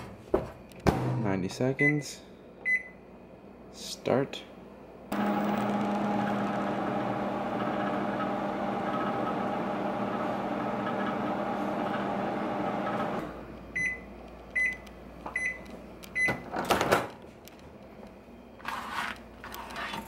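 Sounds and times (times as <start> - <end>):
microwave beeps: 1.8 - 3.0, 5.2 - 16.6
microwave oven humming: 4.6 - 18.6.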